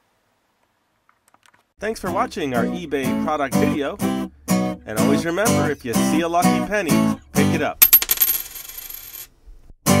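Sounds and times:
coin clinking on hard surface: 7.8s - 9.3s
high ringing of coin: 7.8s - 9.3s.

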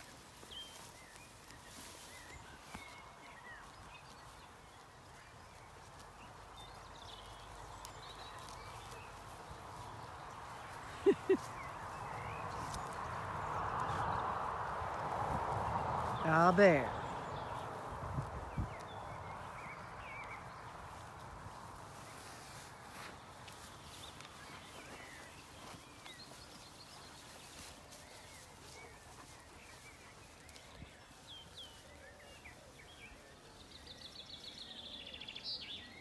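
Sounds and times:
sheep cropping grass: 0.0s - 34.6s.

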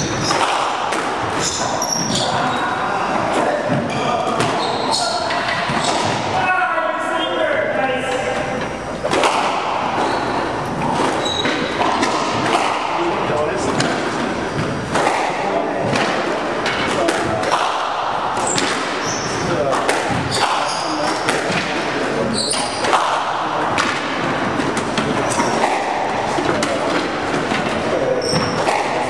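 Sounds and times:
squash ball smacks and thuds: 0.0s - 2.5s, 3.3s - 6.4s, 9.0s - 10.1s, 10.7s - 29.0s
shoes squeaking on wooden floor: 1.3s - 6.3s, 8.0s - 12.7s, 18.4s - 21.2s, 22.2s - 23.0s, 24.3s - 28.8s.

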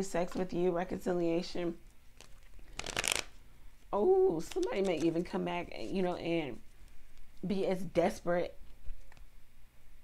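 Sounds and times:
cards riffling: 2.2s - 3.3s.

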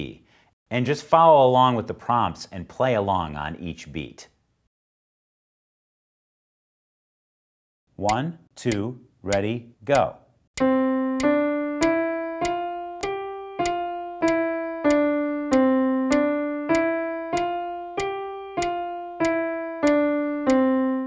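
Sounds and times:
piano single notes: 10.6s - 21.0s.

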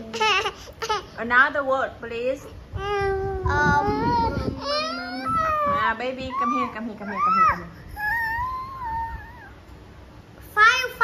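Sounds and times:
young child whining and wailing: 2.7s - 9.6s.

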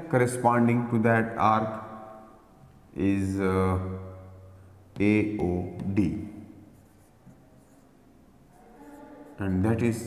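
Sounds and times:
marker pen scratching on whiteboard: 5.0s - 10.0s.

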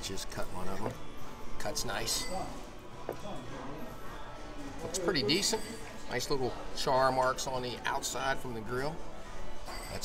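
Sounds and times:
faint diners' voices: 0.0s - 10.0s.

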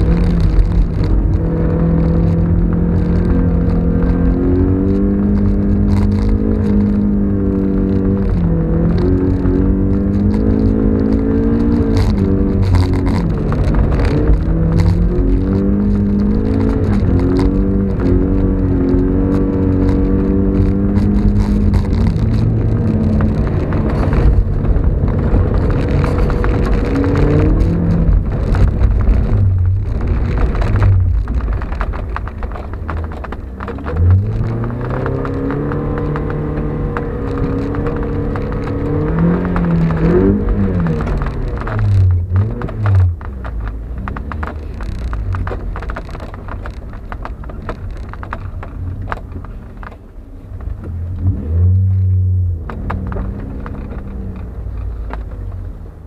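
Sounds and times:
car engine revving: 0.0s - 56.0s
low road rumble: 0.0s - 56.0s.

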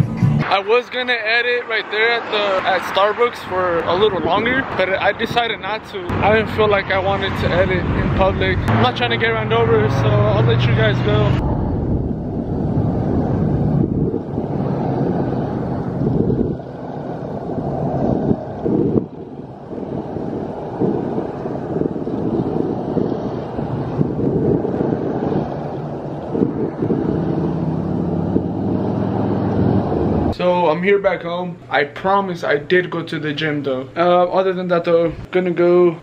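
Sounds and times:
freeway traffic roar: 0.0s - 35.9s
wind buffeting microphone: 1.4s - 30.4s.

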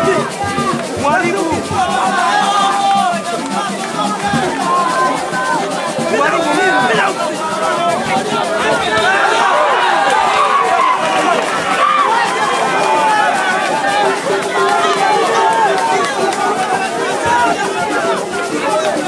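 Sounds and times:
crowd shouting and talking: 0.0s - 19.0s.

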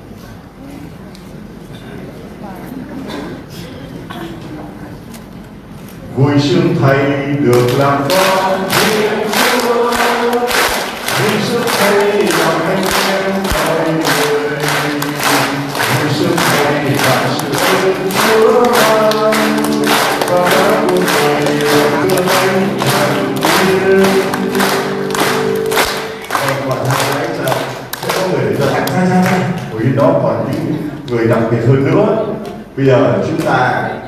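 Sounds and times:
choir singing a hymn: 6.5s - 26.7s
steady beat: 7.6s - 30.2s.

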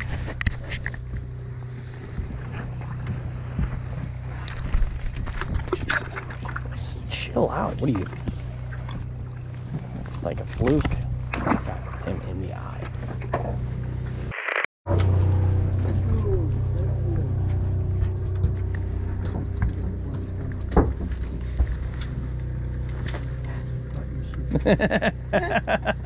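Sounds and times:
boat motor idling: 0.0s - 14.2s, 14.9s - 26.0s.

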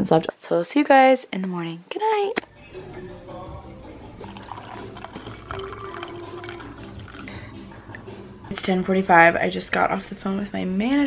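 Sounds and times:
soft background music: 2.4s - 11.0s
coffee pouring into mug: 2.9s - 8.0s.

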